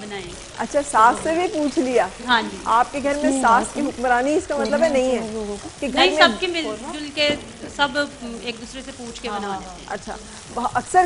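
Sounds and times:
food sizzling in a pan: 0:00.0 - 0:11.0
woman speaking into a microphone: 0:00.0 - 0:11.0.

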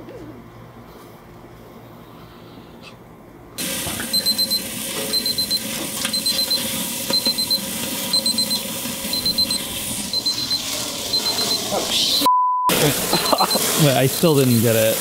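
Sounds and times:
electronic alarm beeping: 0:04.1 - 0:13.7, 0:14.4 - 0:14.8
steady hiss: 0:09.5 - 0:15.0.

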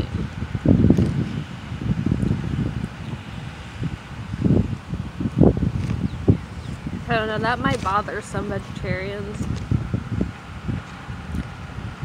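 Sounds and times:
wind buffeting microphone: 0:00.0 - 0:12.0
leaves rustling: 0:00.2 - 0:11.9.

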